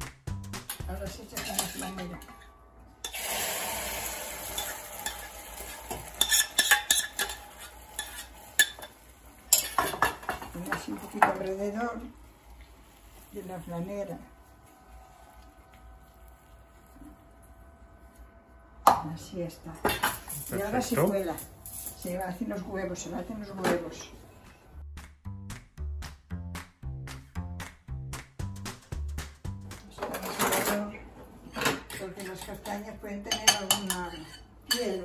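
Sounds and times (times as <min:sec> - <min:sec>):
background music with plucked bass: 0:00.0 - 0:01.2, 0:24.8 - 0:30.0
faint steady hum: 0:11.5 - 0:24.8.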